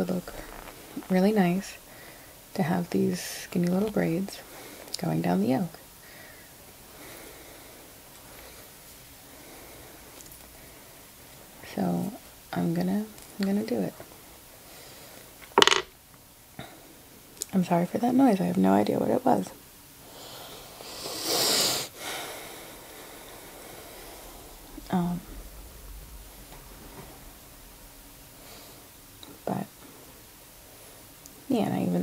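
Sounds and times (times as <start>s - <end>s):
low room hum and hiss: 0.0s - 32.0s.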